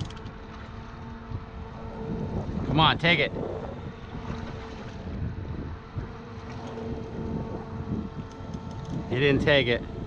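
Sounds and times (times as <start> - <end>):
faint hum: 0.0 - 10.0
water against boat hull: 0.0 - 10.0
wind on microphone: 0.0 - 10.0.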